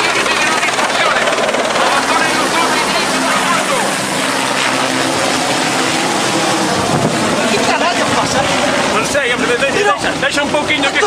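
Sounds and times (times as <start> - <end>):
helicopter flying overhead: 0.0 - 11.0.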